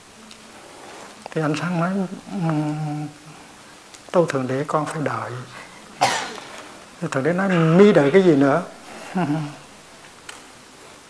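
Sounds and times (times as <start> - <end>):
man humming long syllable: 0.5 - 3.8, 7.2 - 9.9
man speaking: 1.3 - 3.3, 4.1 - 5.8, 7.0 - 9.7.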